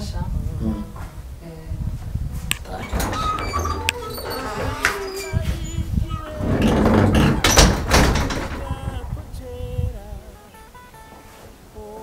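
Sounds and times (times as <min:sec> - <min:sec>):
wooden door pushed shut: 0:02.6 - 0:09.2
music with held keyboard notes: 0:09.9 - 0:12.0.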